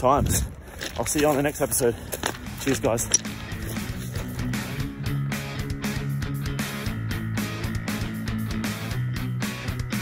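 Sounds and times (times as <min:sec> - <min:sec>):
guitar-led background music: 0:02.2 - 0:10.0.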